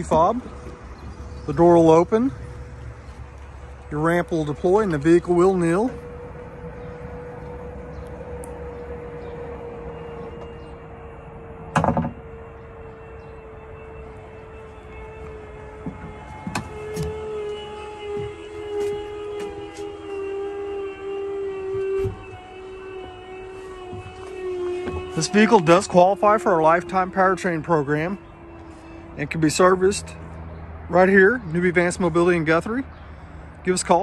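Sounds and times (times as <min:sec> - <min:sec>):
electric motor whine: 0:00.0 - 0:30.6
two-tone motor whine: 0:00.0 - 0:34.0.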